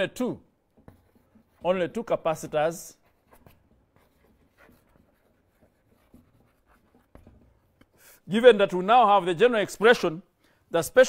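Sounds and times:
pen scratching while writing: 0.8 - 1.8, 3.0 - 8.0.

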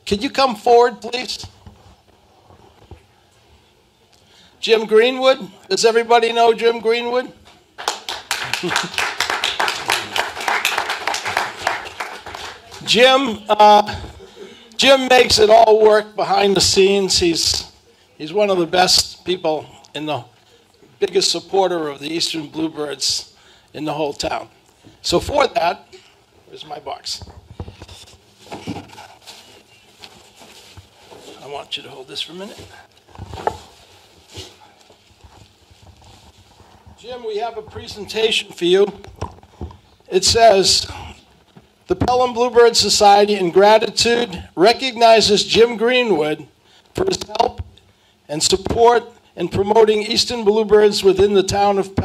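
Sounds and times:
audience applauding: 7.8 - 12.8
wrapping paper rustling: 27.8 - 37.0.

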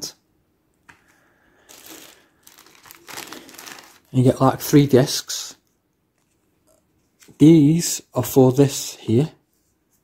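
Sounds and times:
plastic bag crinkling: 1.6 - 4.4.

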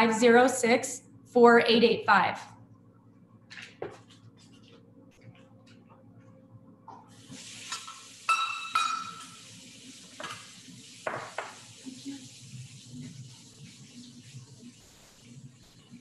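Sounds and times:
kitchen tap running: 7.0 - 16.0
kitchen vessel clinking and knocking: 8.3 - 9.3.

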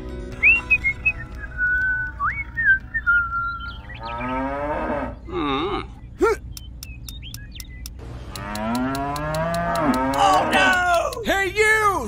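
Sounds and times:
cow mooing: 4.0 - 5.9, 8.3 - 10.8
quick steady ticking: 6.2 - 11.7.

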